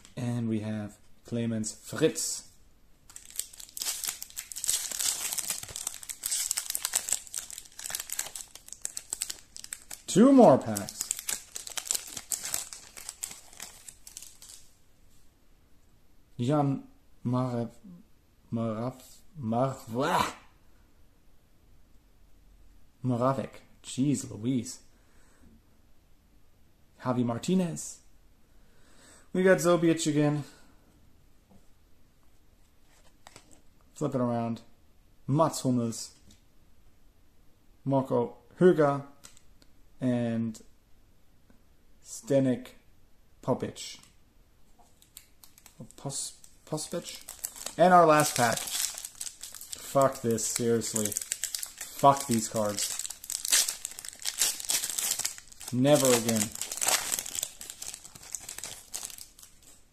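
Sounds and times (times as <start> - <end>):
trading cards clicking and rustling: 3.1 - 14.6
foil wrapper crinkling: 3.1 - 14.7, 45.0 - 59.8.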